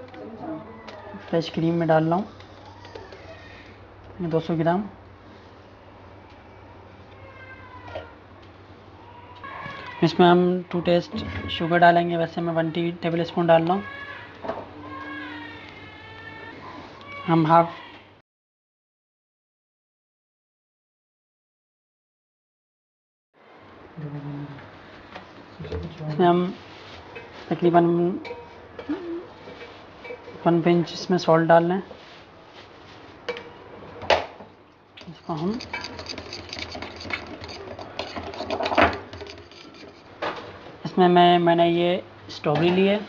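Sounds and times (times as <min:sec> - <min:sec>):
beaters rattling in glass bowl: 0:35.0 - 0:40.1.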